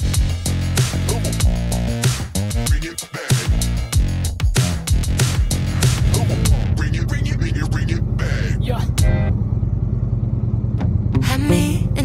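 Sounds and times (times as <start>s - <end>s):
background music: 0.0s - 6.8s, 8.8s - 9.3s
motorcycle engine running: 4.9s - 12.0s.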